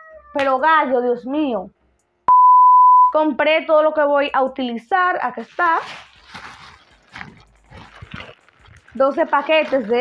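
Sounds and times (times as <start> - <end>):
plastic bag rustling and crinkling: 5.3 - 10.0.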